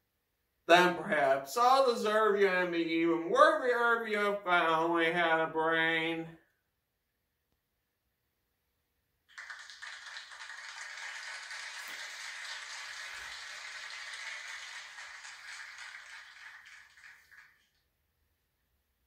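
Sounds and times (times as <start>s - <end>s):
audience applause: 9.3s - 17.8s.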